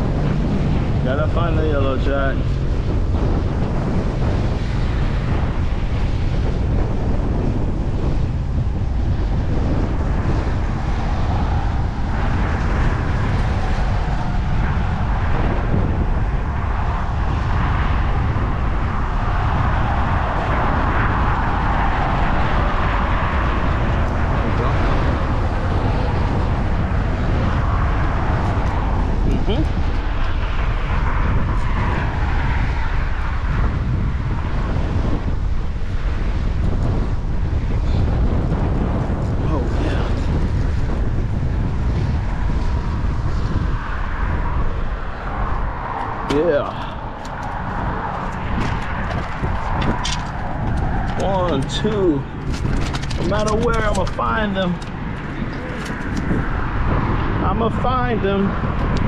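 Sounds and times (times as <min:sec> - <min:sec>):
passing vehicle: 0:00.0 - 0:59.0
wind buffeting microphone: 0:00.0 - 0:59.0.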